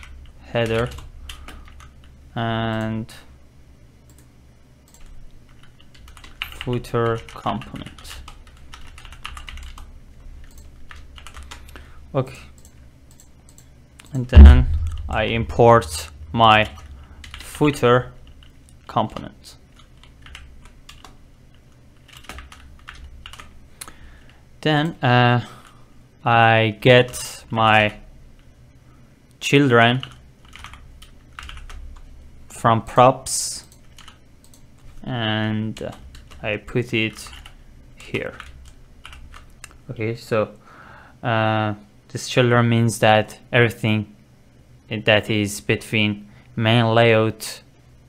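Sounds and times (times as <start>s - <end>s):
computer keyboard typing: 0.0s - 2.1s, 4.9s - 11.8s, 16.4s - 17.6s, 18.2s - 18.8s, 19.7s - 23.5s, 30.0s - 32.0s, 33.6s - 34.7s, 35.8s - 36.5s, 37.1s - 39.8s
keyboard typing clicks: 4.9s - 6.6s, 7.9s - 11.6s.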